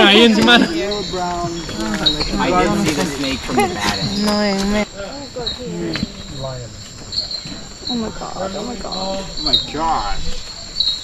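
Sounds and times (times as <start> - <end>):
insects chirping and trilling: 0.0 - 11.0
people talking quietly: 0.0 - 11.0.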